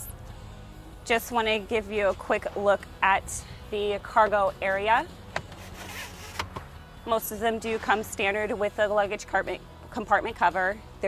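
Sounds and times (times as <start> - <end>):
cover sliding rustle: 5.4 - 6.7.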